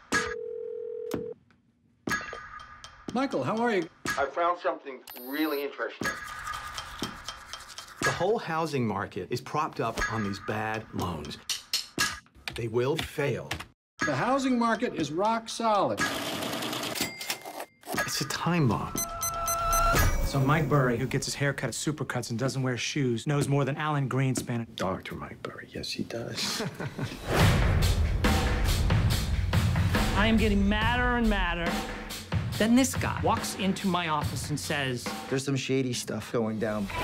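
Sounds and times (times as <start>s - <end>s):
banknote counting machine riffling: 16.0s - 17.7s.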